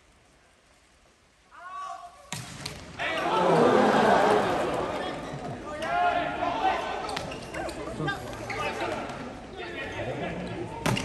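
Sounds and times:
volleyball smack: 2.3s - 2.9s
crowd shouting: 3.0s - 4.9s.

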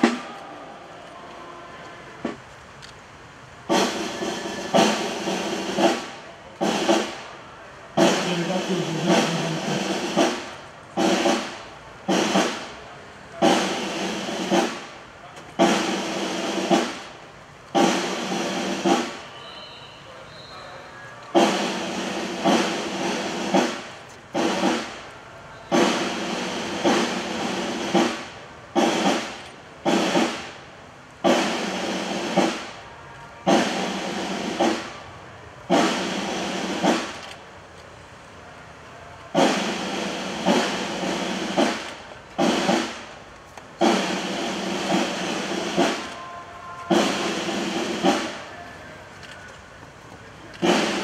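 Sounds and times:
snare drum rolls: 0.0s - 0.7s, 2.2s - 2.4s, 3.6s - 7.4s, 8.0s - 19.6s, 21.3s - 37.4s, 39.2s - 51.0s.

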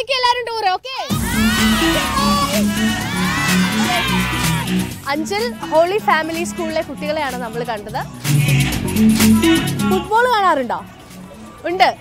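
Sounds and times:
children shouting and cheering: 1.0s - 5.7s
music with repeated low notes: 1.1s - 12.0s.

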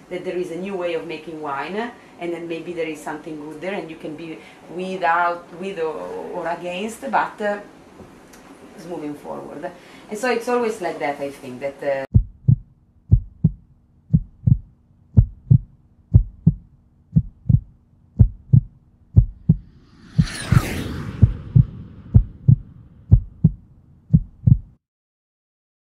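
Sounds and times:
low steady hum: 0.0s - 24.7s
heartbeat double thump: 12.1s - 20.4s, 21.0s - 24.8s
whoosh: 19.2s - 23.6s.

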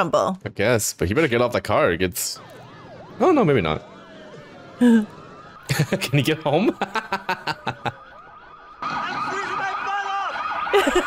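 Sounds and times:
car alarms wailing: 2.2s - 11.0s.

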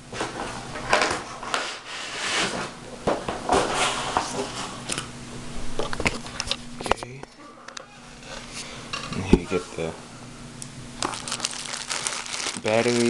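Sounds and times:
plastic wrap and cardboard rustling: 11.0s - 13.0s.

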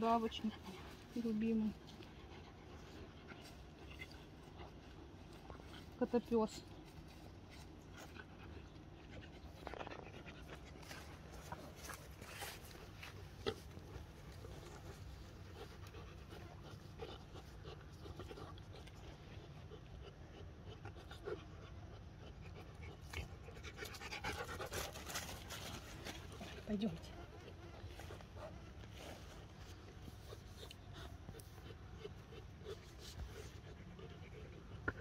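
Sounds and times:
animal panting: 0.0s - 35.0s.

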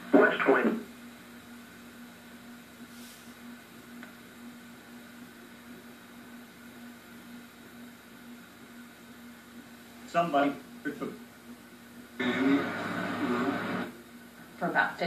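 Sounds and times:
faint hiss: 2.8s - 3.6s
low hum: 12.2s - 14.0s.

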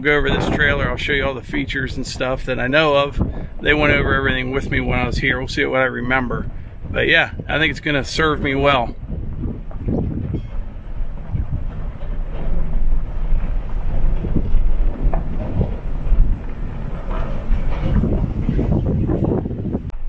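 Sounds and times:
truck engine low rumble: 0.0s - 20.0s
uneven rattling: 0.0s - 20.0s.

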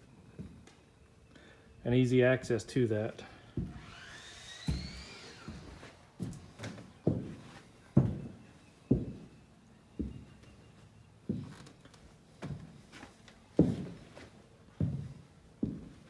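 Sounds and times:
footsteps on plywood floor: 3.6s - 16.0s
high squeak: 3.8s - 5.8s.

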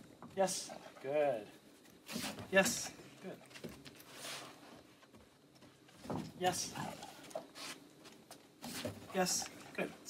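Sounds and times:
soft rustle: 1.5s - 6.0s, 6.8s - 9.1s.

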